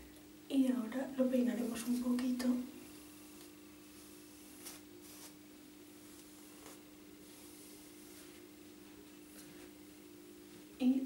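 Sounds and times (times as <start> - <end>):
steady low hum: 0.0 - 11.0
comb swishing through hair: 1.5 - 10.7.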